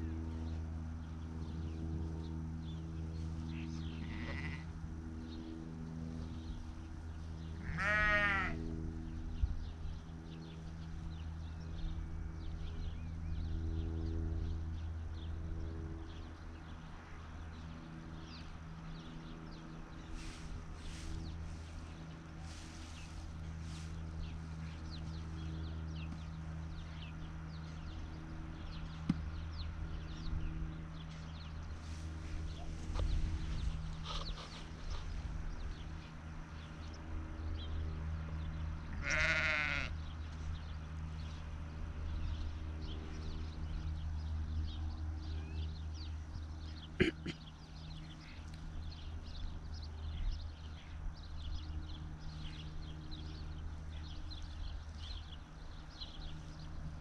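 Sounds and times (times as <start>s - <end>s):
steady low hum: 0.0s - 57.0s
sheep bleating: 3.9s - 4.7s, 7.6s - 8.6s, 38.9s - 40.0s.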